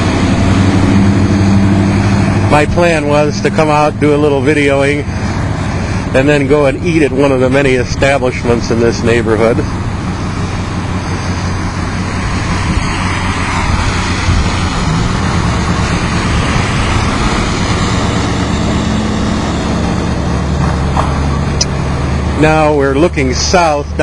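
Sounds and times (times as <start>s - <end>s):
car driving past: 0.0s - 6.2s, 9.3s - 22.6s
vehicle engines humming: 0.0s - 24.0s.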